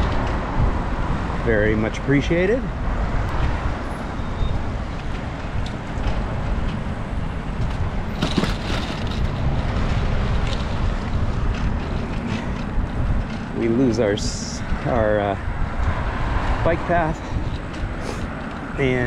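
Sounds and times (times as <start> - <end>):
road traffic noise: 0.0 - 19.0
wind rushing over microphone: 0.0 - 19.0.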